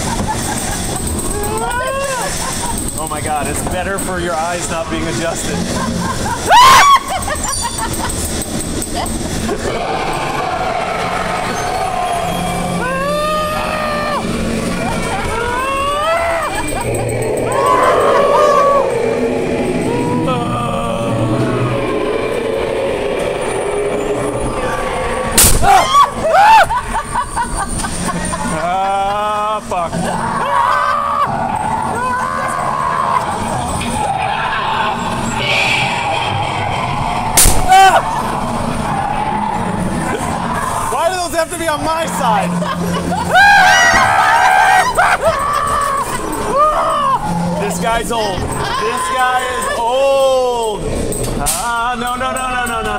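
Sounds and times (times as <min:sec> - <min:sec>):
ride car rumbling on track: 0:00.0 - 0:30.6, 0:31.2 - 0:52.9
warbling cry: 0:00.6 - 0:03.5, 0:05.7 - 0:08.0, 0:09.0 - 0:51.2
long wailing cries: 0:01.2 - 0:02.5, 0:06.4 - 0:07.4, 0:09.5 - 0:27.2, 0:28.5 - 0:41.1, 0:42.2 - 0:50.6
sudden burst of noise: 0:02.2 - 0:28.9, 0:31.3 - 0:44.3
moaning voice-like effects: 0:09.0 - 0:26.7, 0:28.0 - 0:51.4.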